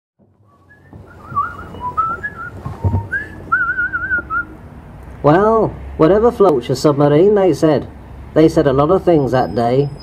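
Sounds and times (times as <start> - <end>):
person whistling: 0.5 - 4.5
brief knock: 2.6 - 3.3.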